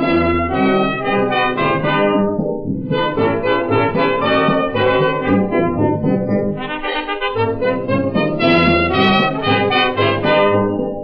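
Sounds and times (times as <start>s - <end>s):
brass-led dance orchestra: 0.0s - 11.0s.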